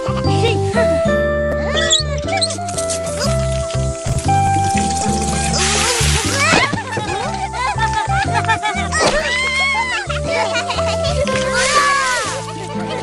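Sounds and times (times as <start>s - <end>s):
background music with bass line: 0.0s - 13.0s
water rushing through a hose: 2.5s - 7.5s, 11.2s - 13.0s.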